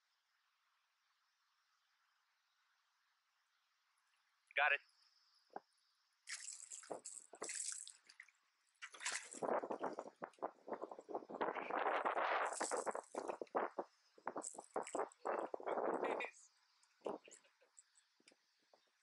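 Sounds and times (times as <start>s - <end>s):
water splashing beside a boat: 6.3s - 16.2s.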